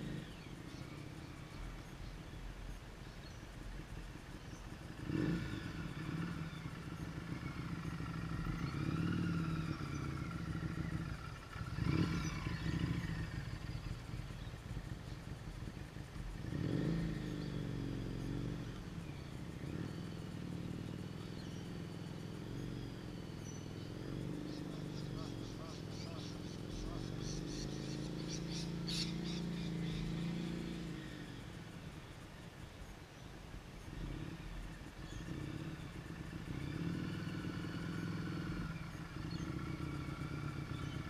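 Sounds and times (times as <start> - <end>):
motorcycle engine: 0.0 - 41.0.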